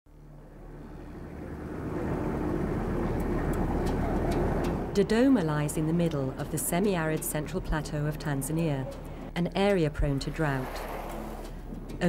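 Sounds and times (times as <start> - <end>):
locomotive engine rumble: 0.2 - 12.0
wheels clacking on rails: 1.8 - 12.0.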